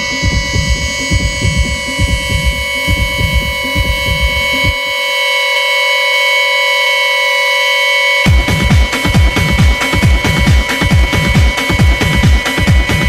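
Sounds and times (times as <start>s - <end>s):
kick drum beat: 0.0s - 4.8s, 8.3s - 13.0s
sustained synth tone: 0.0s - 13.0s.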